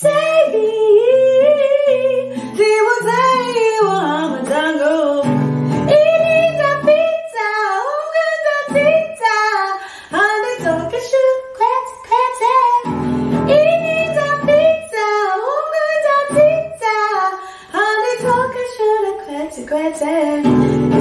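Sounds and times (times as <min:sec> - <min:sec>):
woman singing: 0:00.0 - 0:21.0
classical guitar chords: 0:01.4 - 0:07.2, 0:12.8 - 0:14.9, 0:20.4 - 0:21.0.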